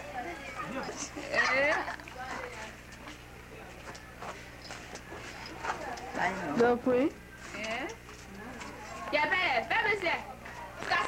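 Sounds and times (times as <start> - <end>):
faint voices talking: 0.0 - 11.0
steady low hum: 0.0 - 11.0.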